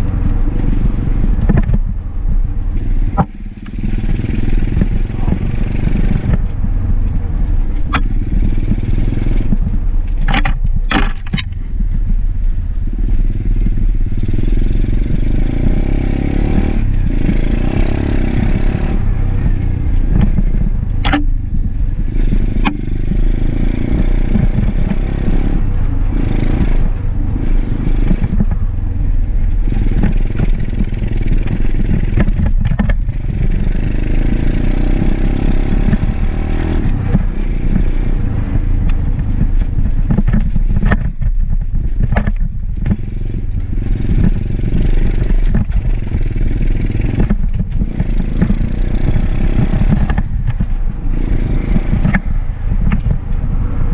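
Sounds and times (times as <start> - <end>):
dirt bike engine revving: 2.8 - 11.7, 13.0 - 42.2, 42.8 - 53.9
sharp clicks: 19.9 - 21.4, 22.2 - 23.2.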